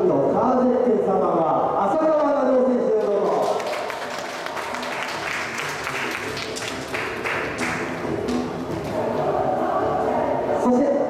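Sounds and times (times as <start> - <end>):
audience applause: 3.0 - 9.1
background music: 3.4 - 11.0.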